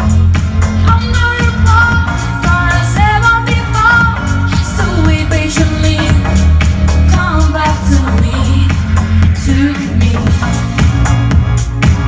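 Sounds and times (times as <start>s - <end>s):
pop backing track: 0.0s - 12.0s
girl singing into a microphone: 0.8s - 6.2s.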